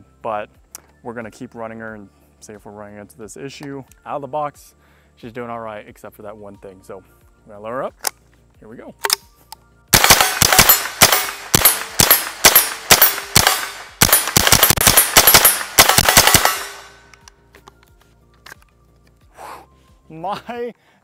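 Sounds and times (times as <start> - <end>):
rifle shots fired rapidly: 9.9 - 17.0.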